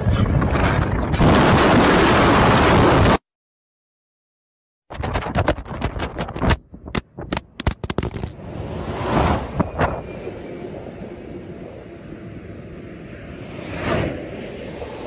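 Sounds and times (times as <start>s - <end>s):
sharp knocks and clatters: 4.9s - 8.4s.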